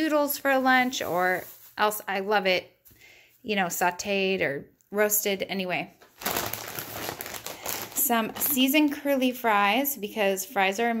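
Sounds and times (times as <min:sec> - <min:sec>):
plastic bag crinkling: 0:00.4 - 0:02.2, 0:06.0 - 0:08.9.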